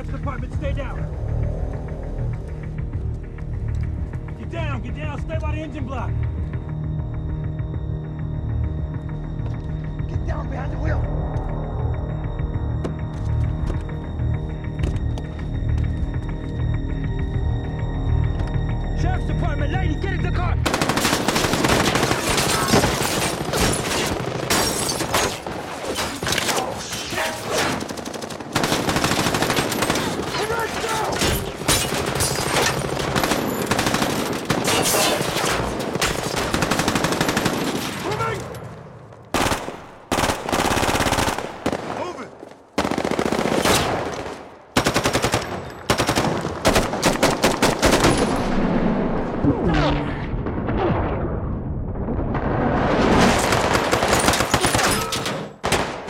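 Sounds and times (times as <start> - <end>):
low musical drone: 0.0 - 20.7
heavy automatic gunfire: 20.6 - 24.6, 27.6 - 30.8, 31.4 - 37.9, 39.4 - 42.1, 42.8 - 48.4.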